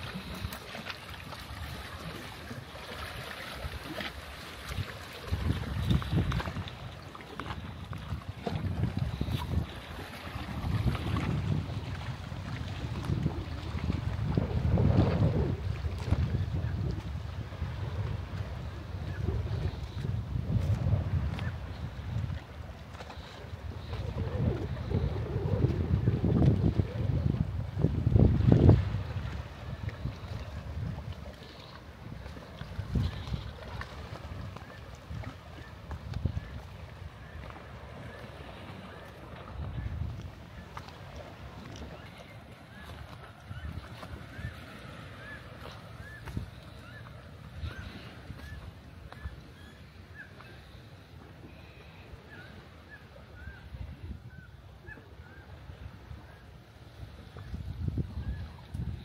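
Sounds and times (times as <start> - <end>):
wind buffeting microphone: 0.0 - 49.7, 53.4 - 56.3, 57.0 - 59.0.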